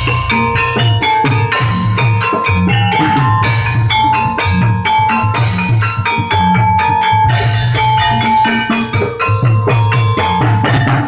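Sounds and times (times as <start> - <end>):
hand-drum strokes: 0.0 - 11.0
ringing metallophone strikes: 0.0 - 11.0.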